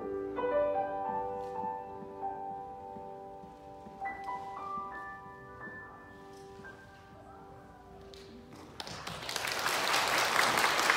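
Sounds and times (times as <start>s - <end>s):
audience applauding: 8.6s - 10.9s.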